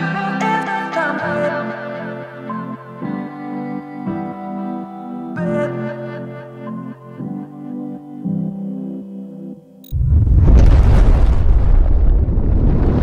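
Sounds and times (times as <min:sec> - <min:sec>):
soft background music: 0:00.0 - 0:09.9
rumbling explosion: 0:09.9 - 0:13.0.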